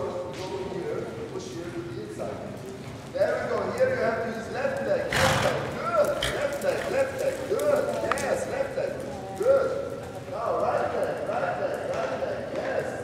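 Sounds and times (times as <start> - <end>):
horse hoofbeats on sand: 5.1 - 13.0.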